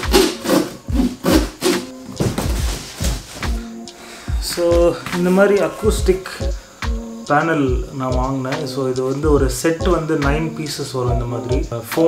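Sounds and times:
cardboard scraping and rustling: 0.0s - 3.6s
cardboard thudding on floor: 0.1s - 3.6s.

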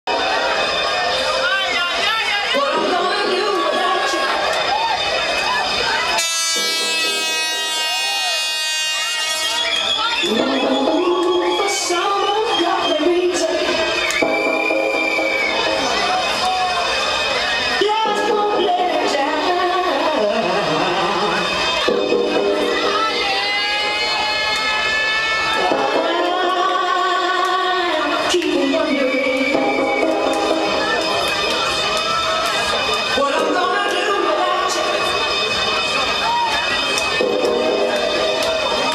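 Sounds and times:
crowd voices: 0.0s - 38.9s
club dance music: 0.1s - 38.9s.

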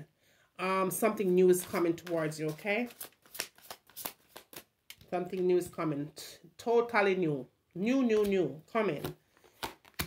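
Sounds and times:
cards being shuffled: 1.2s - 5.6s, 8.2s - 10.0s.

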